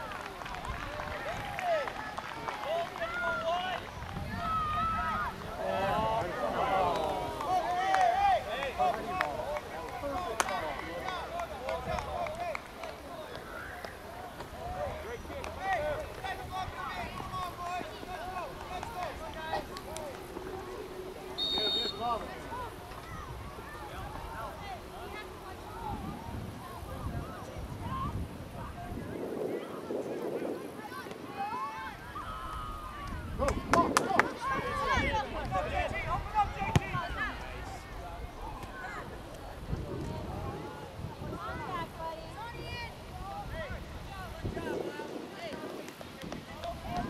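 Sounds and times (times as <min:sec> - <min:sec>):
people shouting across a field: 0:00.0 - 0:28.2, 0:30.8 - 0:33.4, 0:34.0 - 0:44.7
voices calling out: 0:00.0 - 0:28.4
ball kicked thud: 0:36.7 - 0:37.0.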